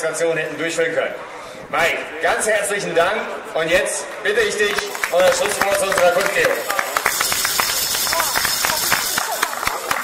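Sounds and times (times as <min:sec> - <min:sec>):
crowd applause: 0:04.7 - 0:10.0.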